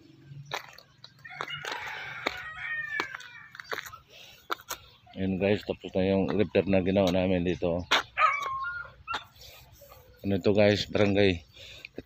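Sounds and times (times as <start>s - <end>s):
rooster crowing: 1.2s - 3.6s.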